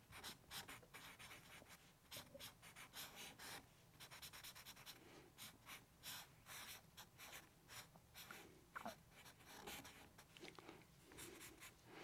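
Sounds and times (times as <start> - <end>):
marker scratching on paper: 0.1 - 10.3.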